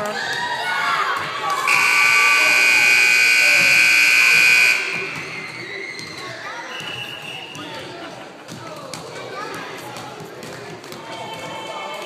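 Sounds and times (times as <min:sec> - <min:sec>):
scoreboard buzzer: 0:01.7 - 0:05.4.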